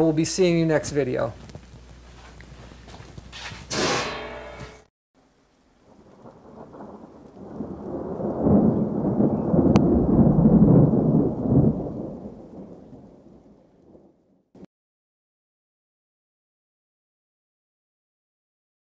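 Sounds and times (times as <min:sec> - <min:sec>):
rolling thunder rumble: 0:05.7 - 0:14.4.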